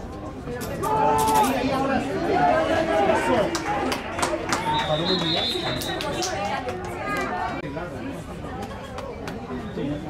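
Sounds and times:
voices shouting and chattering: 0:00.0 - 0:10.0.

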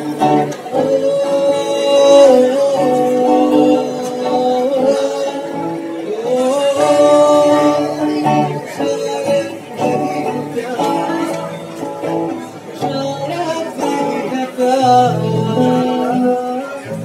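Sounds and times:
acoustic guitar strumming: 0:00.0 - 0:17.0
man singing: 0:00.0 - 0:17.0.

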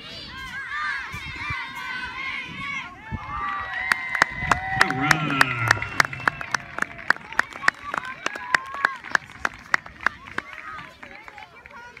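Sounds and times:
crowd chattering and calling out: 0:00.0 - 0:12.0
hand claps: 0:03.9 - 0:10.7.

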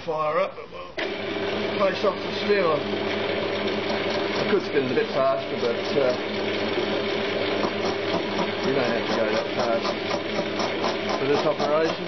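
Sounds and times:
metal lathe running: 0:01.0 - 0:12.0.

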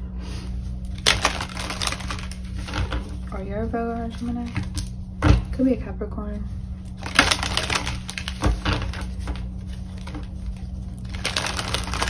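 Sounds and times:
cards being shuffled: 0:00.8 - 0:03.2, 0:06.9 - 0:12.0.

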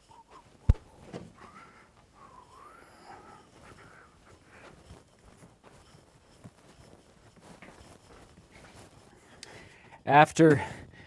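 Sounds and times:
squeaks and handling noise: 0:00.0 - 0:10.0.

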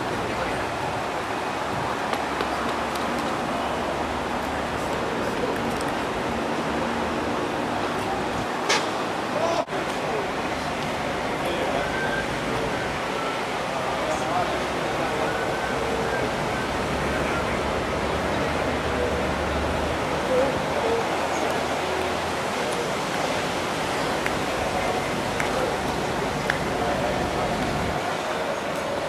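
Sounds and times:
microphone hiss: 0:00.0 - 0:29.0
people talking: 0:00.0 - 0:29.0.

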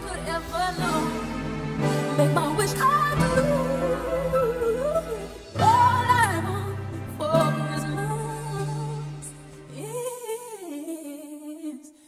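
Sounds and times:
backing music: 0:00.0 - 0:10.3.

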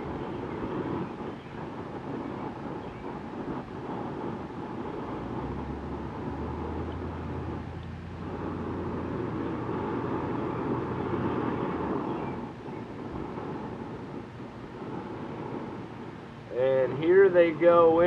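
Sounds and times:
low hum: 0:00.0 - 0:18.0
steady rushing noise: 0:00.0 - 0:18.0.

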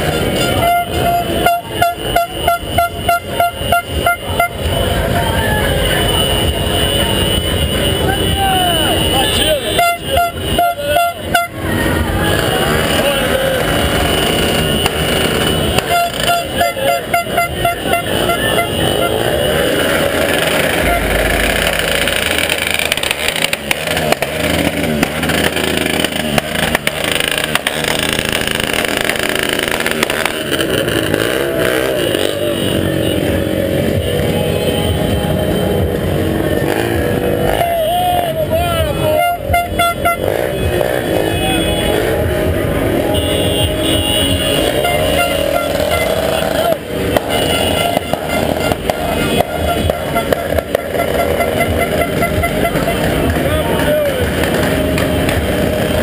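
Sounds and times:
short horn toots: 0:00.0 - 0:04.8, 0:43.0 - 0:53.5
car and motorcycle engines running: 0:00.0 - 0:56.0
people shouting: 0:04.2 - 0:14.9, 0:37.4 - 0:39.5.

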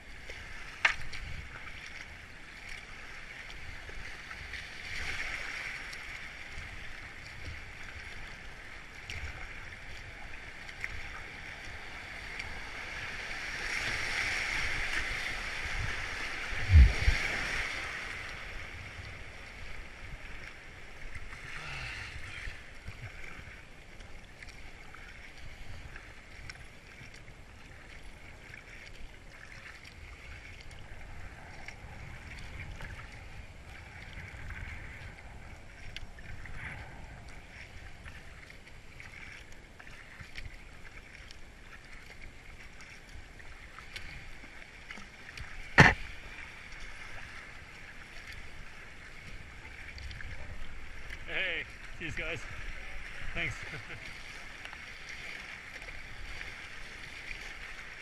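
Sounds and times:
paddle strokes dipping: 0:00.0 - 0:58.0
water rushing and splashing: 0:00.0 - 0:58.0
sharp knock: 0:45.8 - 0:46.0.

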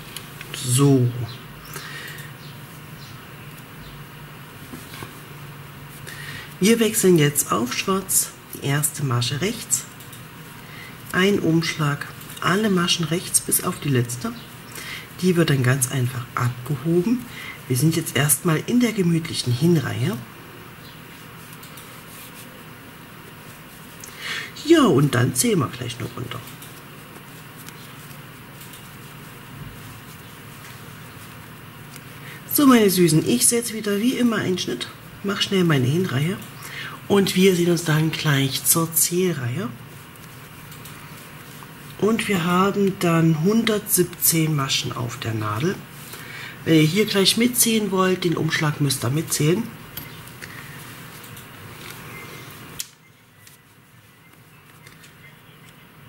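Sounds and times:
low hum and hiss: 0:00.0 - 0:56.0
wool shawl rustling: 0:04.4 - 0:08.5, 0:09.4 - 0:34.4, 0:37.2 - 0:48.0, 0:49.0 - 0:56.0.

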